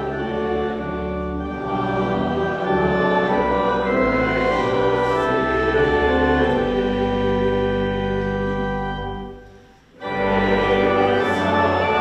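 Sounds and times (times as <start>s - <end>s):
congregation singing a hymn: 0.0s - 12.0s
organ accompaniment: 0.0s - 12.0s.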